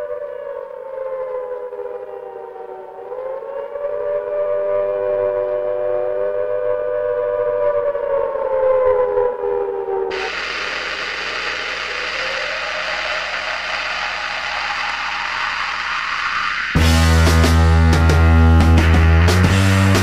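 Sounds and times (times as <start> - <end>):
siren-like wailing tones: 0.0 - 18.2
loud hissing wash of noise: 10.1 - 17.3.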